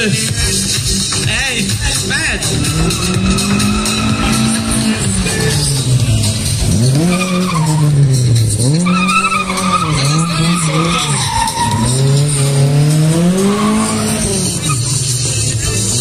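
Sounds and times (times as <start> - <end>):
car engine revving: 0.1 - 16.0
tyres squealing: 1.2 - 16.0.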